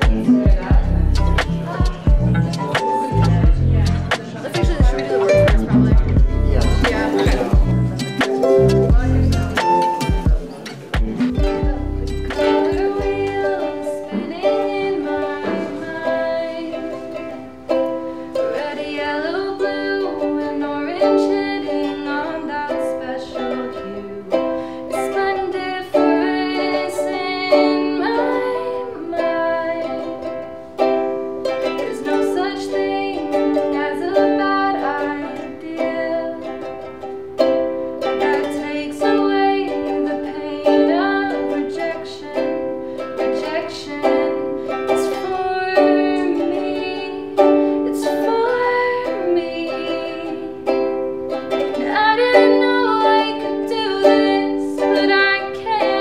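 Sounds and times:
ukulele strumming chords: 0:00.0 - 0:56.0.

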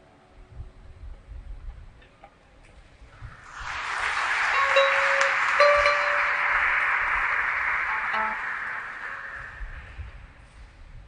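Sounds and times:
steady rushing noise: 0:03.1 - 0:10.9.

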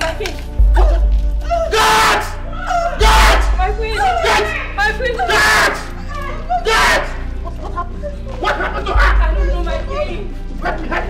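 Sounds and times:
low film music: 0:00.0 - 0:11.0.

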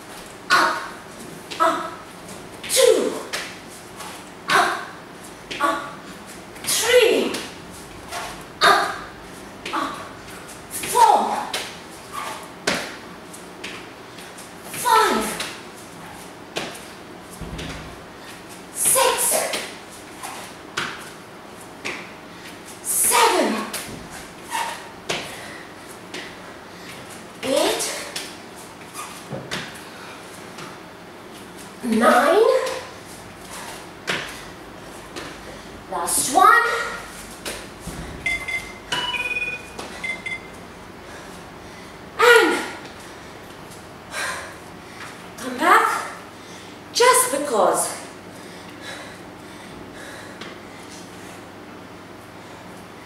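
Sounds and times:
knocks and squeaks on a mat: 0:12.1 - 0:12.9, 0:23.9 - 0:25.2, 0:28.8 - 0:29.7, 0:37.9 - 0:40.5
hands and feet landing on mat: 0:17.4 - 0:18.0
woman breathing hard: 0:25.2 - 0:27.1, 0:44.1 - 0:45.1, 0:48.3 - 0:51.5.

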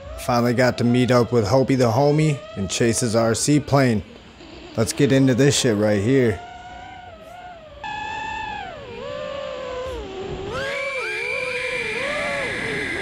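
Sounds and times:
steady high tone: 0:00.0 - 0:13.0
quadcopter motors whining: 0:04.3 - 0:13.0.

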